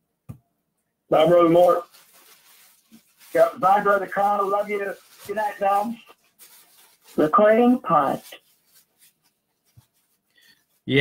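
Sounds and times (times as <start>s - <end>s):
man's voice: 1.1s - 1.8s, 3.3s - 6.0s, 7.2s - 8.3s.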